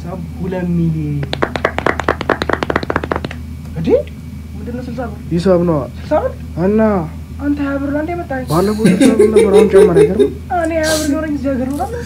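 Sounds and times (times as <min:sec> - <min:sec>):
rapid sharp clicks: 0:01.2 - 0:03.4.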